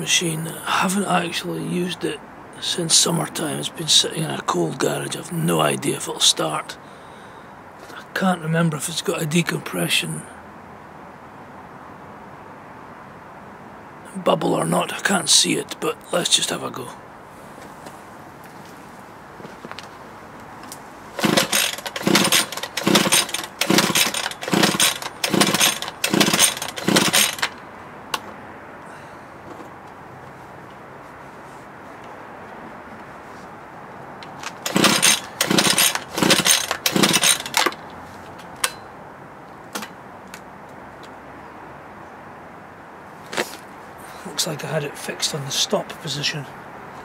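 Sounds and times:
recoil pull starter cranking engine: 21.2 - 27.6, 34.3 - 37.9.

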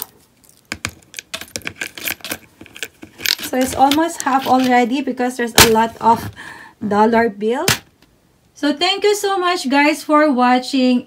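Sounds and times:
coins clinking into a jar: 1.0 - 4.8.

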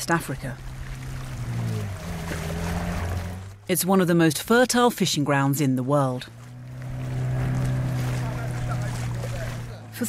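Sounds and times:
outboard motor running: 0.0 - 10.0
water splashing around hull: 0.0 - 10.0.

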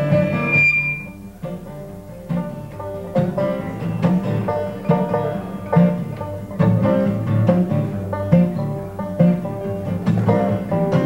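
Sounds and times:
acoustic guitar: 0.0 - 11.0
banjo: 0.0 - 11.0.

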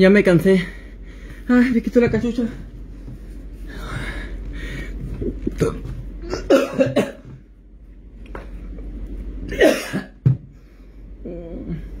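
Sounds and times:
man coughing: 6.2 - 7.4, 9.5 - 10.2.

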